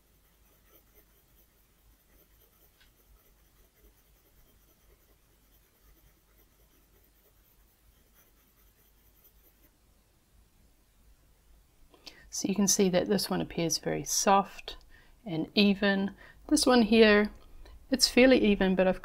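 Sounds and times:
pencil scratching on paper: 0.0s - 9.7s.

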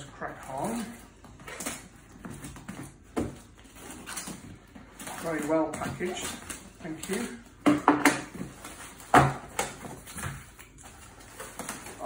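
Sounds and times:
rustling cardboard and tissue paper: 0.0s - 12.0s.

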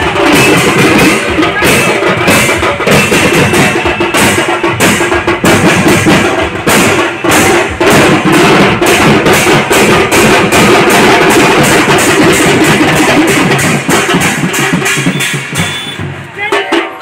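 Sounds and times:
drums beaten fast: 0.0s - 17.0s.

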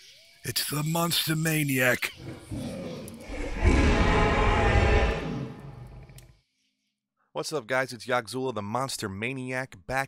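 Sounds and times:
deep rumbling roar: 2.5s - 6.2s.

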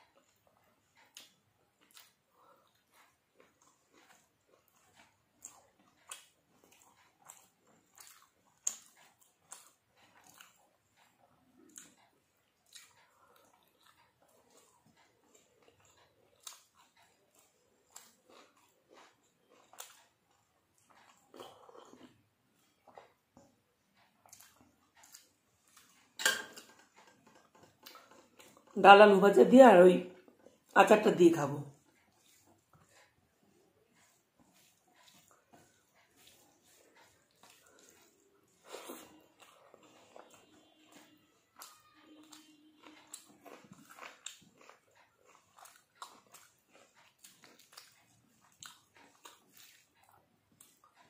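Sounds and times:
chewing clicks and smacks: 0.0s - 28.8s, 31.8s - 51.0s
fingers mixing rice on metal plate: 31.8s - 51.0s.

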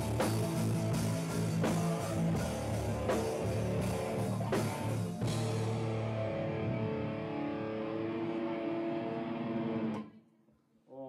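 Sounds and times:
drum hits: 0.0s - 6.2s
electric guitar chord ringing: 0.0s - 10.0s.

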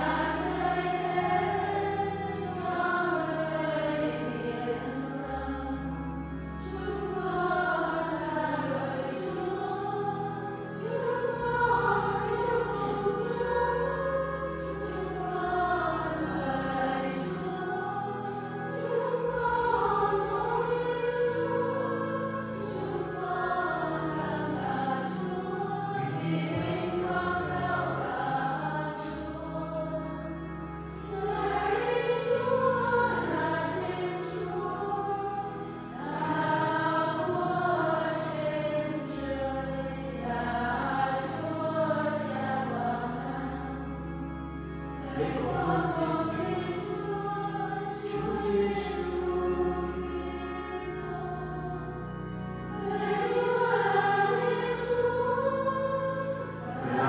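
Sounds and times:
congregation singing a hymn: 0.0s - 57.0s
keyboard holding low notes: 0.0s - 57.0s.

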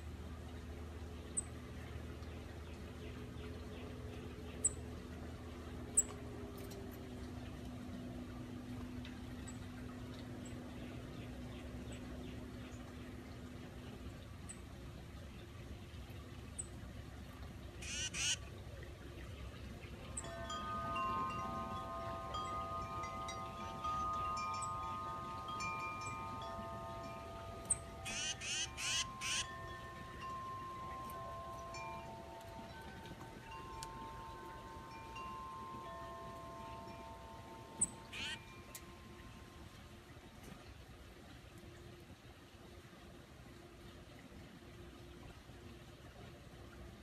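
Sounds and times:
harsh bird calls: 17.8s - 18.4s, 27.7s - 29.5s
thin high bird chirps: 17.8s - 18.4s, 21.2s - 32.8s, 37.8s - 38.6s
wind chimes ringing: 19.9s - 40.0s.

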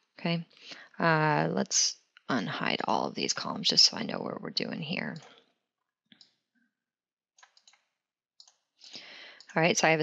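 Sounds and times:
computer mouse clicks: 7.4s - 7.8s.

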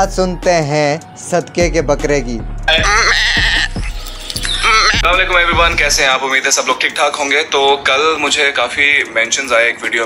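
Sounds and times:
music with a steady beat: 0.0s - 6.1s
goat bleat: 2.7s - 3.8s
man's voice: 4.5s - 10.0s.

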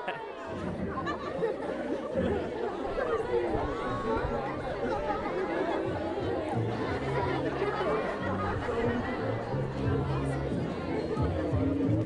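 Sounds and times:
children chattering: 0.0s - 12.0s
music playing: 5.9s - 12.0s.

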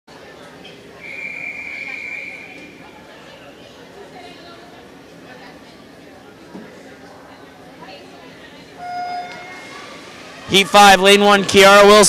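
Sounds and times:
crowd chatter echoing: 0.1s - 12.0s.

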